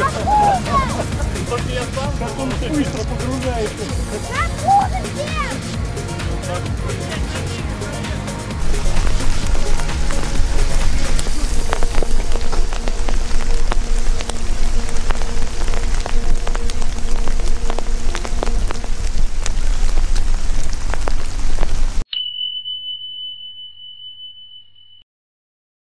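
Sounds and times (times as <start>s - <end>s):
low rumble: 0.0s - 22.0s
rain falling on river: 8.6s - 22.0s
high chime ringing: 22.1s - 25.0s.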